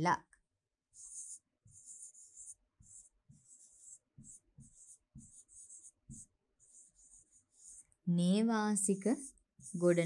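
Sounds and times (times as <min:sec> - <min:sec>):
pen scratching on whiteboard: 0:00.8 - 0:10.0.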